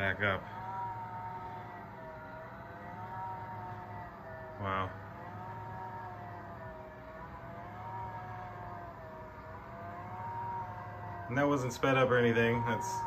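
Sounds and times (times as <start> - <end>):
roller shade motor whirring: 0.0 - 13.0.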